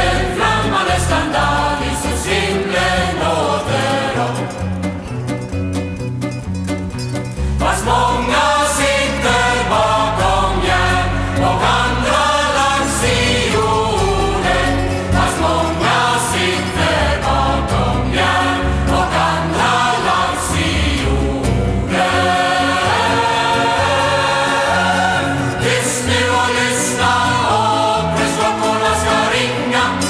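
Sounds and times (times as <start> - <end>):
choir singing: 0.0 - 5.0, 7.6 - 30.0
band with bouzouki and piano: 0.0 - 30.0.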